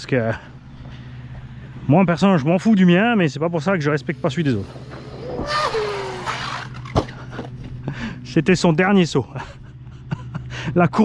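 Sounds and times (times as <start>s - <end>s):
harsh gear grinding: 3.8s - 7.6s
rc truck motor whine: 4.0s - 7.6s.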